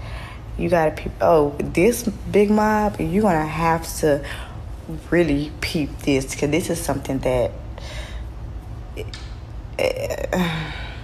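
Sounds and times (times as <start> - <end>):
soft breathing: 0.0 - 0.6, 7.8 - 8.4
low steady hum: 0.0 - 11.0.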